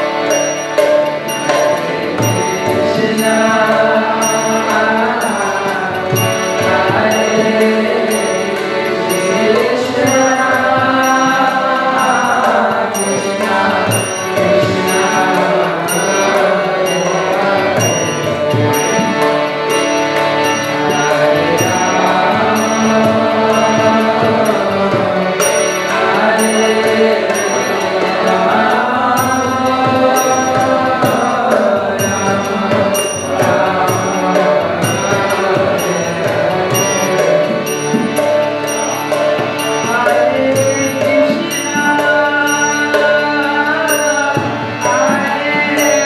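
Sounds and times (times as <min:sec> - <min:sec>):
harmonium sustained chords: 0:00.0 - 0:46.0
high metallic ring: 0:00.3 - 0:03.6, 0:04.2 - 0:43.1
group chanting: 0:20.8 - 0:37.8.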